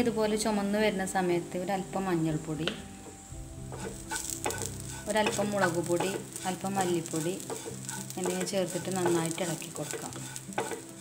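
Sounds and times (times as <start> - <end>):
spatula knocking pan: 2.6 - 11.0
spatula scraping frying pan: 3.7 - 11.0.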